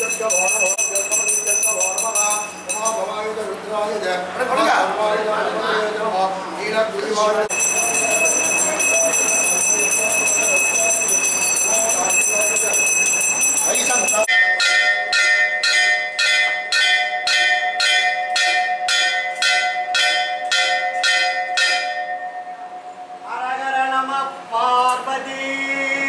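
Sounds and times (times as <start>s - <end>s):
brass hand bell ringing: 0.0s - 3.2s, 7.5s - 23.2s
temple bells ringing: 0.0s - 3.3s, 7.5s - 23.3s
voices: 0.0s - 15.5s.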